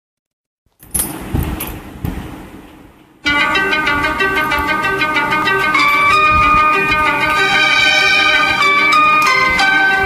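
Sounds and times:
high held note: 0:03.2 - 0:10.0
instrumental karaoke backing track: 0:03.2 - 0:10.0.

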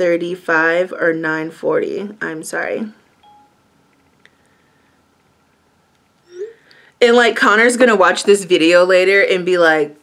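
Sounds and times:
woman humming: 0:06.3 - 0:06.7.

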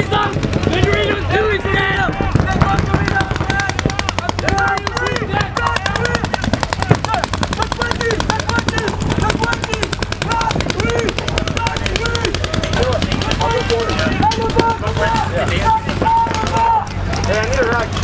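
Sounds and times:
paintball markers firing rapidly: 0:00.0 - 0:18.0
voices calling out: 0:00.0 - 0:18.0.

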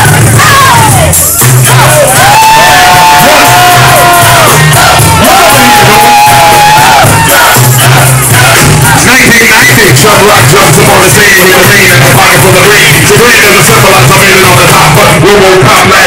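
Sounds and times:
crowd shouting and cheering: 0:00.0 - 0:16.0
held vocal notes: 0:00.0 - 0:16.0
hip-hop music over loudspeakers: 0:00.0 - 0:16.0.

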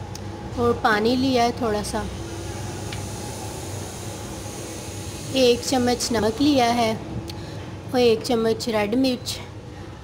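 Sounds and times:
even hiss: 0:02.2 - 0:07.0.

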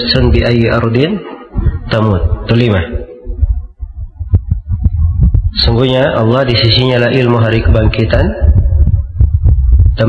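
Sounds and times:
low thumping and rumble: 0:01.5 - 0:10.0.

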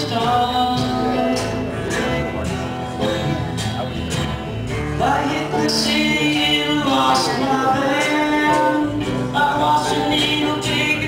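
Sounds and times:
acoustic country-folk band: 0:00.0 - 0:11.0.

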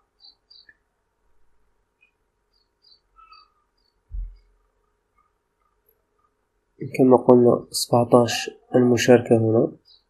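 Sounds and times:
faint high chirps: 0:00.0 - 0:00.9, 0:01.9 - 0:05.4.

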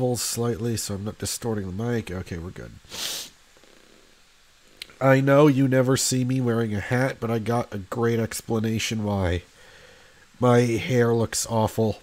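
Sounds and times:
brief hiss: 0:02.8 - 0:03.5
short breath close to microphone: 0:02.9 - 0:03.4, 0:09.5 - 0:10.4.

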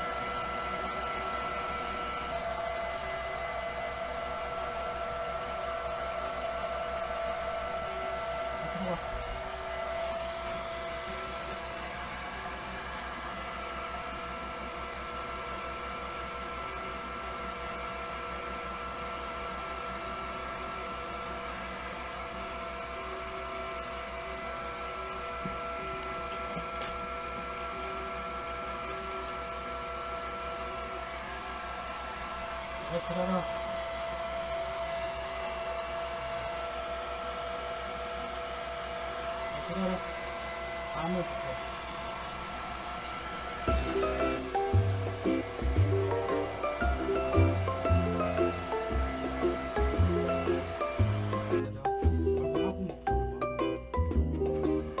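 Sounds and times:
hair dryer running: 0:00.0 - 0:52.9.

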